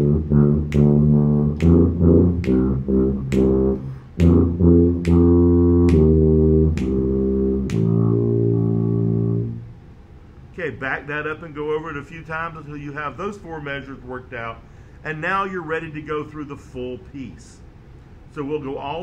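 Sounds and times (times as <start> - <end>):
tuba melody: 0.0 - 9.8
sharp metronome clicks: 7.6 - 8.0.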